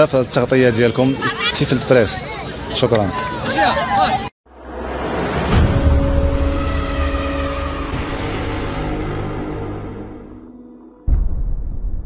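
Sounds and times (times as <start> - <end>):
sharp hit: 4.5 - 10.4
droning tones: 4.5 - 11.3
deep rumbling whoosh: 4.5 - 12.0.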